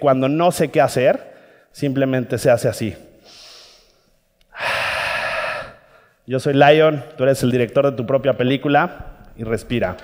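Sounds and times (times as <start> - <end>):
man breathing deeply: 3.2 - 6.2.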